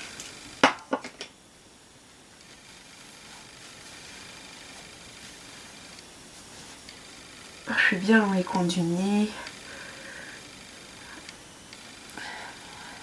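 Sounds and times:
faint steady hiss: 0.0s - 13.0s.

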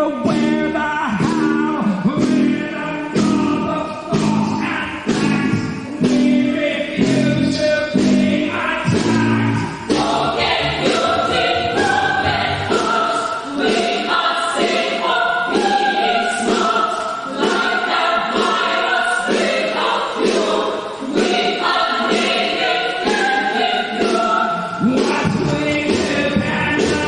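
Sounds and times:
choir singing short chords: 8.0s - 25.1s.

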